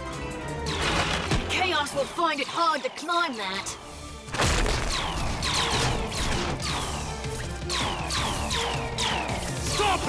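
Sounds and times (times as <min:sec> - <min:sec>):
cartoon action music: 0:00.3 - 0:10.0.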